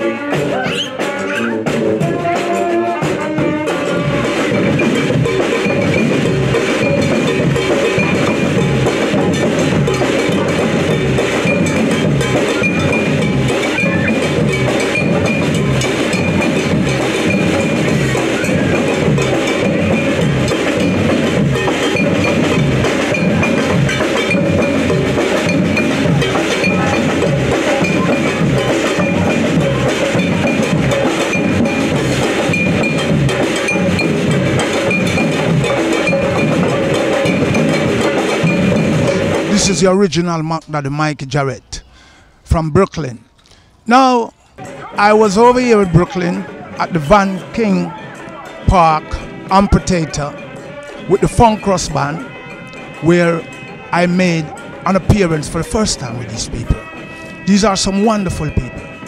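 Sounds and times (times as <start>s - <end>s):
brass horns: 0.0s - 39.8s, 44.6s - 59.0s
drum line groove: 0.0s - 41.5s, 43.9s - 59.0s.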